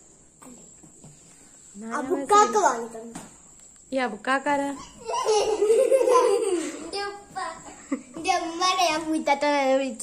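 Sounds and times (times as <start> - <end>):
children chattering and giggling: 4.7 - 10.0.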